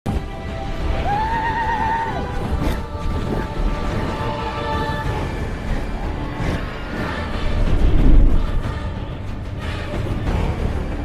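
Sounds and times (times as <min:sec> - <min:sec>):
film score music: 0:00.1 - 0:11.0
steady low rumble: 0:02.2 - 0:11.0.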